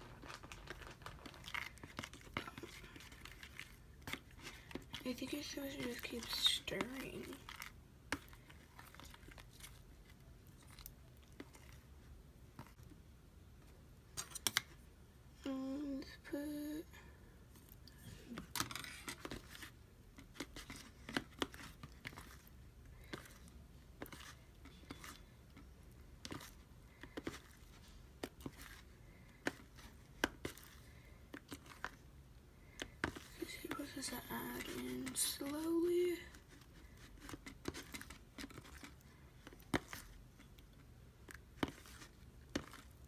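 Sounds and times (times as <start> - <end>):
slime being stirred: 0.0 - 13.0, 17.5 - 43.0.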